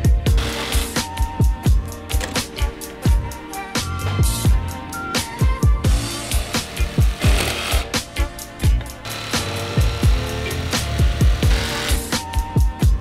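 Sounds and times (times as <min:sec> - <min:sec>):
music with deep bass beat: 0:00.0 - 0:13.0
jigsaw cutting wood: 0:00.4 - 0:01.0, 0:06.1 - 0:08.1, 0:09.0 - 0:12.2.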